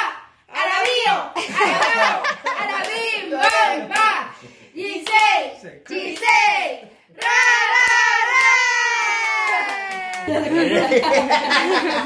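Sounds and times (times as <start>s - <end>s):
family singing birthday song: 0.0s - 9.0s.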